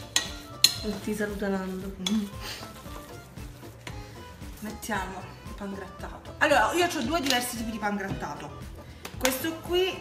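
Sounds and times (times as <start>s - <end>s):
fork stirring thick mixture: 0.0s - 5.1s
faint music: 0.0s - 10.0s.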